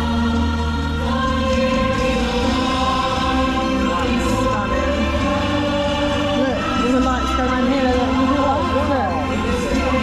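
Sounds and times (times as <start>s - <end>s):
choir singing long held notes: 0.0s - 10.0s.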